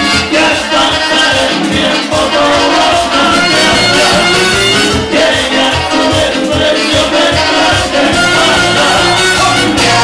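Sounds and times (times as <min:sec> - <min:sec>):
live band playing: 0:00.0 - 0:10.0.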